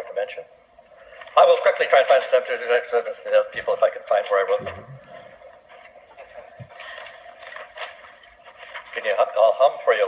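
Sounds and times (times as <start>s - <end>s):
papers rustling: 0.8s - 10.0s.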